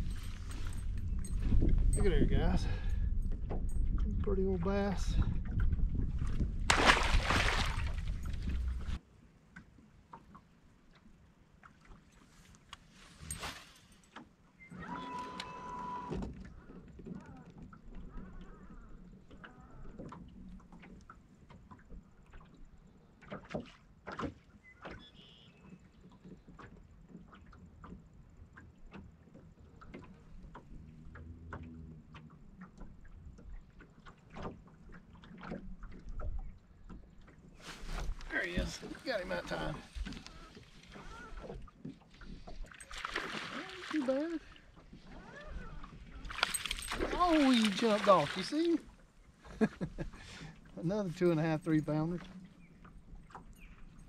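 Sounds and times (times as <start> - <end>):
light clicks and knocks from gear: 0.0 - 5.8, 15.3 - 42.9.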